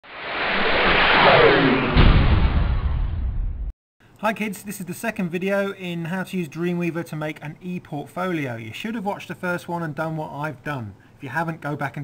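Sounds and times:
whoosh with falling tone: 0:00.0 - 0:03.7
deep low boom: 0:00.1 - 0:03.7.

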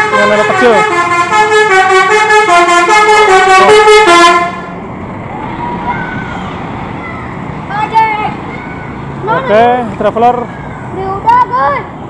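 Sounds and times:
bus musical horn: 0:00.0 - 0:04.8
street traffic noise: 0:00.0 - 0:12.0
voices calling out: 0:03.6 - 0:12.0.

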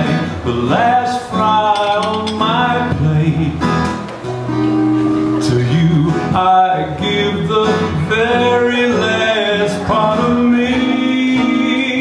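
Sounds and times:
man singing: 0:00.0 - 0:04.0, 0:05.4 - 0:12.0
acoustic guitar: 0:00.0 - 0:12.0.

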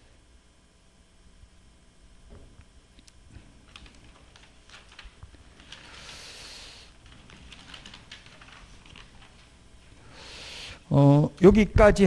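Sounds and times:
paper sheets rustling: 0:03.8 - 0:06.4.

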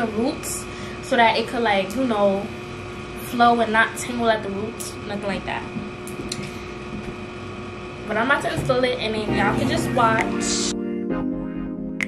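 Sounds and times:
window fan humming: 0:00.0 - 0:10.7.

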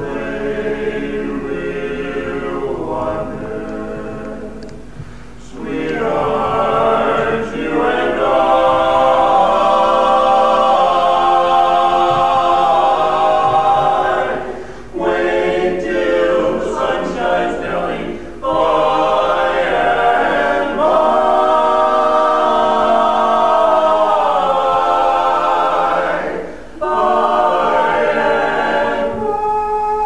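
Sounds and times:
male quartet singing a cappella: 0:00.0 - 0:30.0.

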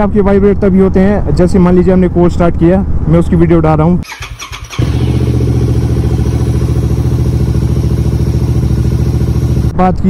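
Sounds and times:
motorcycle engine idling: 0:04.1 - 0:09.8.

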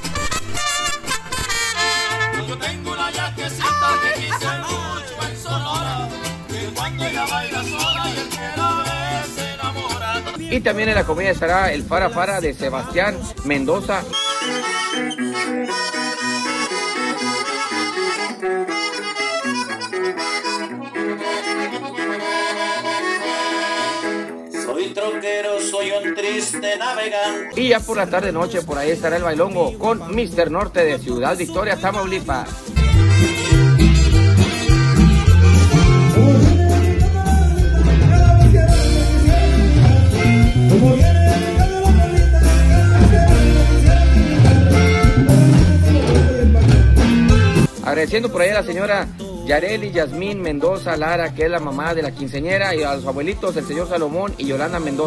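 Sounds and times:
accordion melody: 0:00.0 - 0:11.1, 0:13.2 - 0:30.2, 0:31.2 - 0:55.0
stepping bass line: 0:00.0 - 0:16.8, 0:27.6 - 0:49.6.

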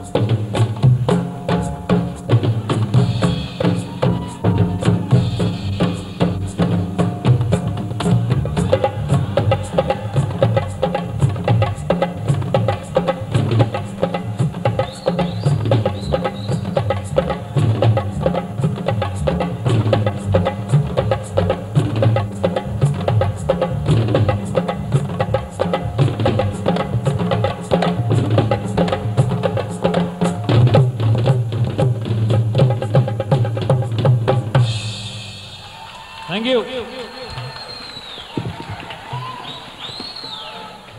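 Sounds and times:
drum kit fast beat: 0:00.0 - 0:37.6.

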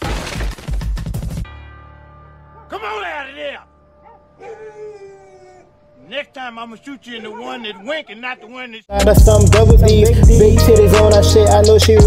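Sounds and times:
drawn-out cry: 0:04.0 - 0:06.1, 0:06.8 - 0:08.6.

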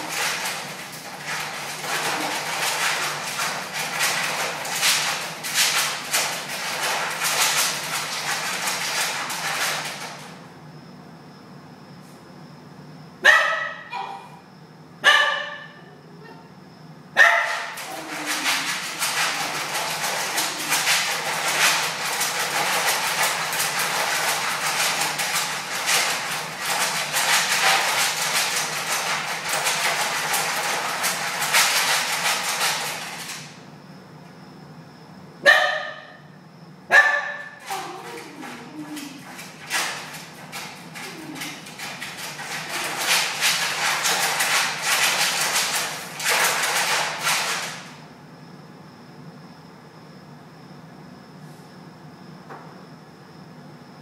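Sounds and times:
dog scratching at wire crate: 0:00.0 - 0:10.4, 0:17.2 - 0:33.6, 0:36.9 - 0:48.0.

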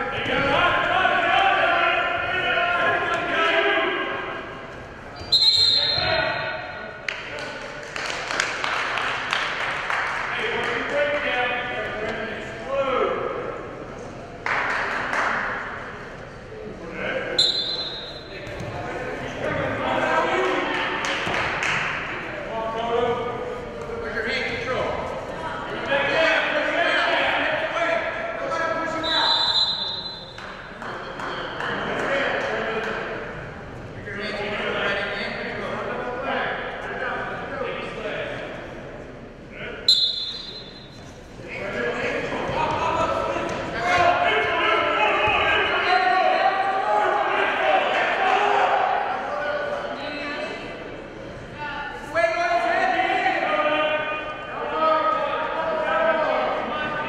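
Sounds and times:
coaches and spectators shouting: 0:00.0 - 0:04.7, 0:41.6 - 0:50.8, 0:51.6 - 0:57.0
referee's whistle blowing: 0:05.2 - 0:06.5, 0:17.4 - 0:18.3, 0:29.0 - 0:30.4, 0:39.9 - 0:41.0.

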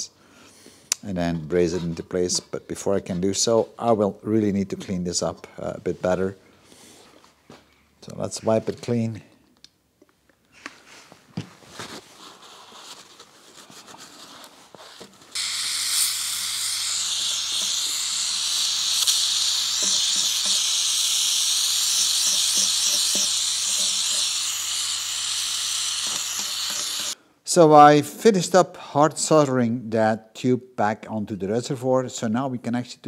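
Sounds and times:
gas torch hissing: 0:15.3 - 0:27.2.

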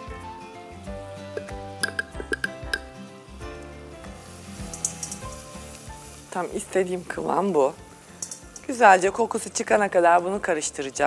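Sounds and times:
soft background music: 0:00.0 - 0:11.0
flour sizzling in butter: 0:03.3 - 0:09.5.

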